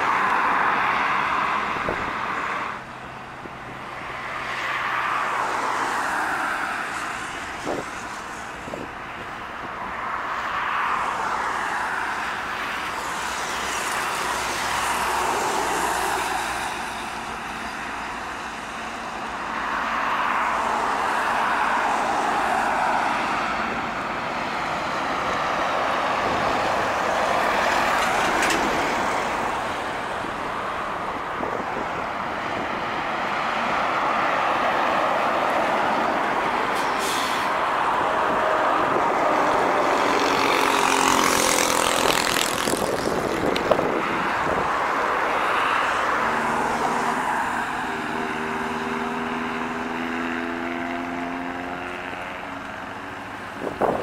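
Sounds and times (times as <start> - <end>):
diesel trucks driving past: 0.0 - 54.0
air brake hiss: 36.8 - 37.6.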